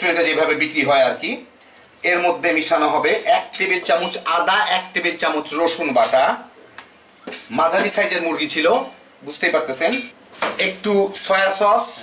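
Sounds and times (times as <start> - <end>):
man speaking: 0.0 - 6.5, 7.3 - 12.0.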